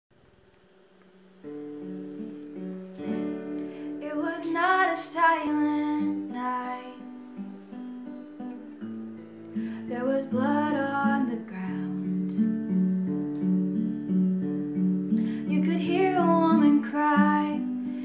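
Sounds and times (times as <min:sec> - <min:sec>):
acoustic guitar held notes: 0:01.1 - 0:18.0
woman singing: 0:04.0 - 0:07.2, 0:09.8 - 0:12.4, 0:15.4 - 0:17.9.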